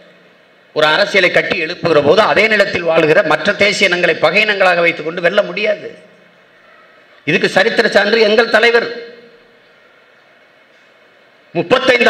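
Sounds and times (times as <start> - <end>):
hall room noise: 0.0 - 12.0
man's amplified voice: 0.7 - 6.2, 7.2 - 9.4, 11.5 - 12.0.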